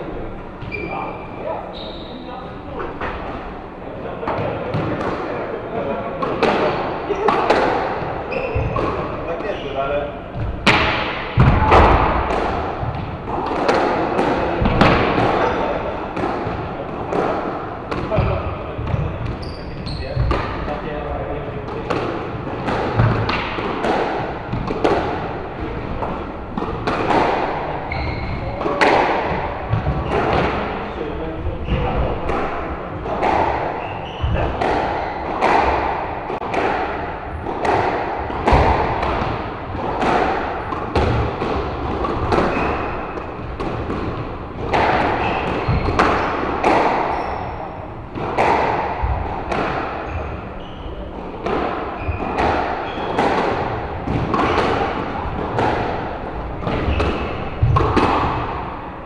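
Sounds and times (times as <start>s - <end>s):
squash ball cracking off walls: 31.8s - 47.1s.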